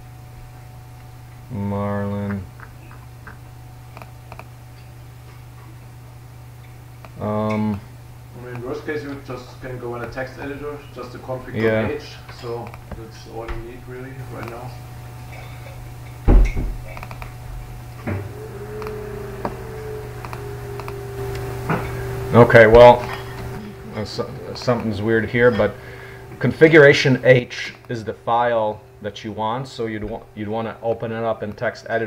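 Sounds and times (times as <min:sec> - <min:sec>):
low electrical hum: 0:00.0 - 0:32.0
steady tone: 0:17.8 - 0:29.4
computer mouse clicks: 0:20.2 - 0:20.9.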